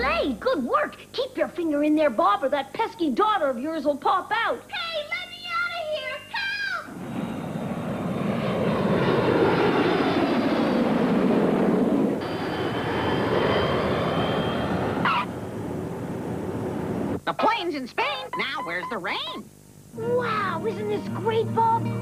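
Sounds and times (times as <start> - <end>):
airliner flying by: 6.9 - 17.2.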